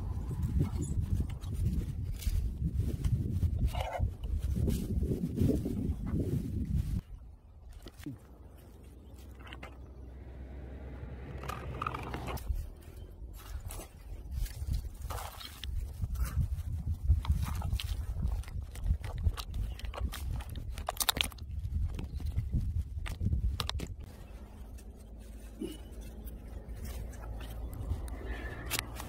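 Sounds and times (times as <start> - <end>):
low rumble: 0.0 - 7.1, 8.4 - 14.9
plastic bottle and soil handling: 0.0 - 10.0, 11.4 - 29.0.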